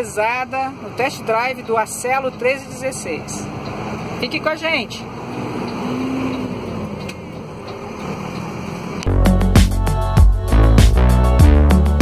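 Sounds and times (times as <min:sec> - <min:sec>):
truck engine and road noise: 0:00.0 - 0:12.0
loud music with heavy bass beat: 0:09.1 - 0:12.0.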